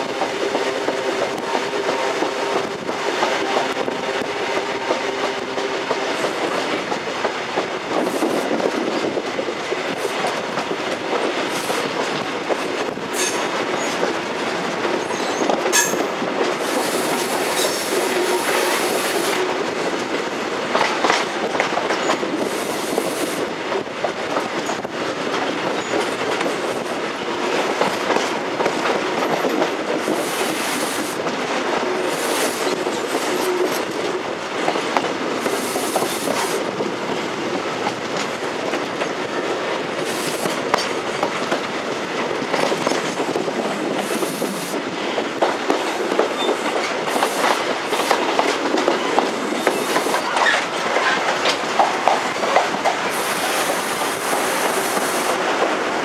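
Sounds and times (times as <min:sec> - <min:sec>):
train rail rumble: 0:00.0 - 0:56.0.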